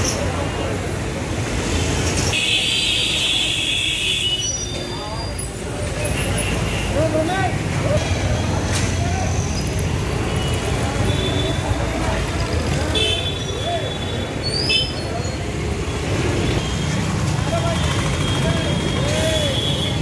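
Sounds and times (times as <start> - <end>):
motorbikes and traffic rumble: 0.0 - 20.0.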